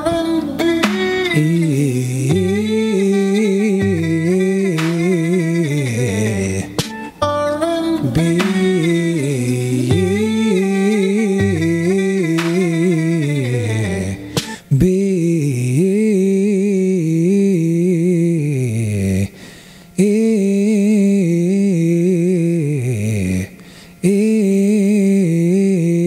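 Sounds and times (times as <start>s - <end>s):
man singing bouncing vocal runs: 0.0s - 7.0s, 7.7s - 18.5s
short breaths: 14.2s - 14.7s, 19.3s - 20.0s, 23.6s - 24.0s.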